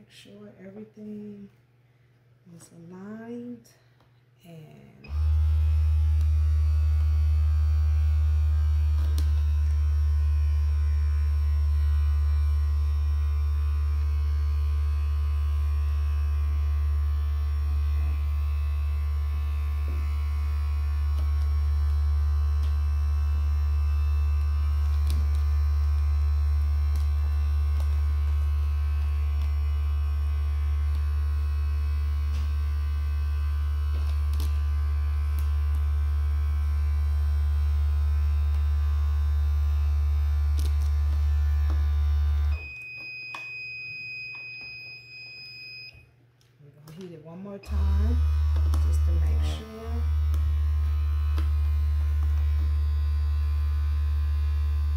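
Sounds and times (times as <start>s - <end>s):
heat press electrical hum: 0.0s - 54.9s.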